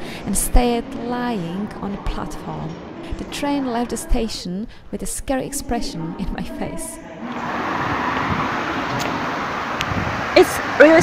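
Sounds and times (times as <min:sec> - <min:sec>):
street traffic rushing: 0:07.1 - 0:11.0.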